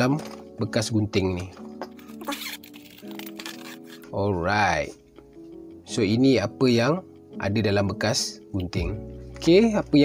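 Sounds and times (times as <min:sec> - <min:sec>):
soft background music: 0:00.0 - 0:10.0
zipper being unzipped: 0:02.0 - 0:04.1.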